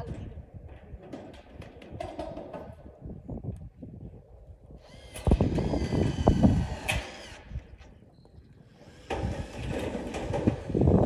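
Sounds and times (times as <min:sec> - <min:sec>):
electric drill driving screw into metal: 0:04.8 - 0:07.8, 0:08.8 - 0:11.0.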